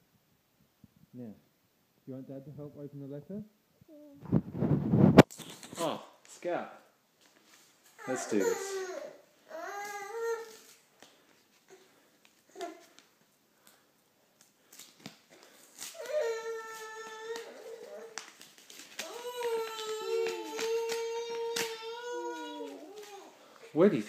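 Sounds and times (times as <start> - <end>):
small clicks and rustles: 9.8 - 23.3
long whining cries: 19.0 - 23.3.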